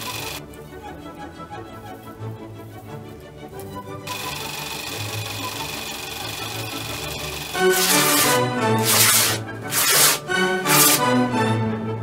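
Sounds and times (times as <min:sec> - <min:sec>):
electric sewing machine stitching: 0:00.0 - 0:00.4, 0:04.1 - 0:11.1
background music: 0:00.0 - 0:12.0.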